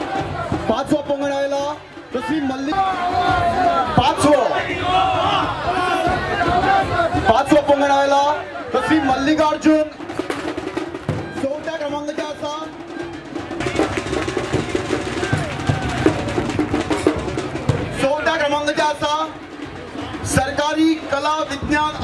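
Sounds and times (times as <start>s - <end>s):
drum-led music with drum roll: 0.0s - 22.0s.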